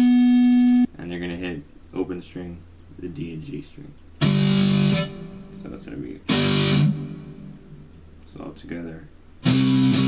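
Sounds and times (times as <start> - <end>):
electric guitar chord strummed: 0.0 - 0.8, 4.2 - 5.6, 6.3 - 7.7, 9.4 - 10.0.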